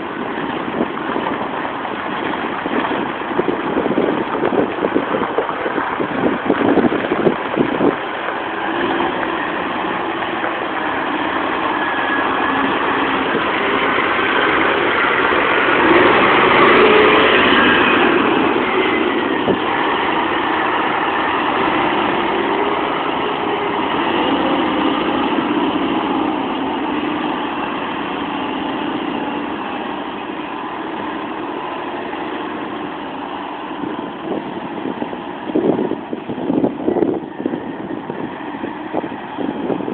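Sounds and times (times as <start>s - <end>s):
truck diesel engine running: 0.0s - 39.9s.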